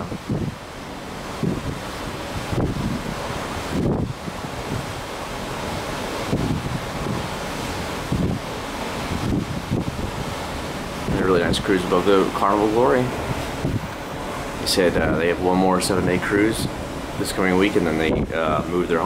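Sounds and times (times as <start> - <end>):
rush of wind and sea: 0.0 - 19.0
wind buffeting microphone: 0.0 - 19.0.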